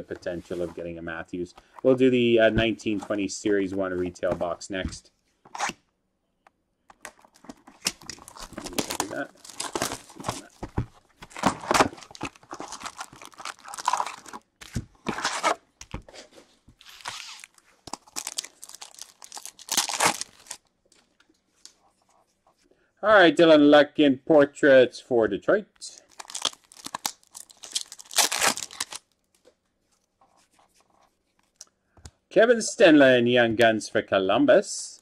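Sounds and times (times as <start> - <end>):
cardboard and foil tearing: 7.8 - 10.7, 11.3 - 14.4, 16.8 - 20.6, 26.1 - 29.0.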